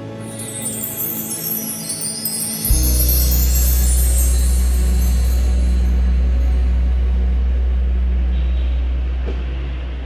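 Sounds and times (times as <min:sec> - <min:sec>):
loud low hum: 0:02.7 - 0:10.0.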